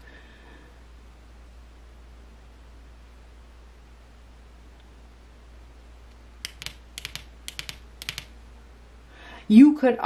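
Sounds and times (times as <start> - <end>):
fingernails tapping on cards: 6.4 - 8.3.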